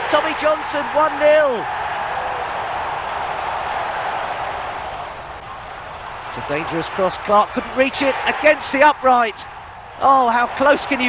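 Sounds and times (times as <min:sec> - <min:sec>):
stadium crowd roar: 0:00.0 - 0:11.0.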